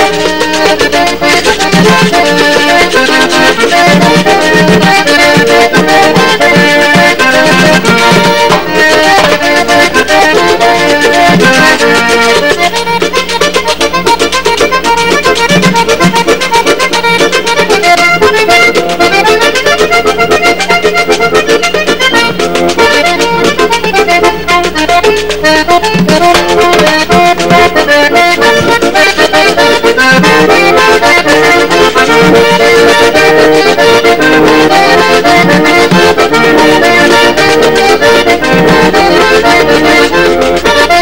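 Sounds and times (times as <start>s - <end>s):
button accordion melody: 0.0s - 41.0s
fast percussion beat: 0.0s - 41.0s.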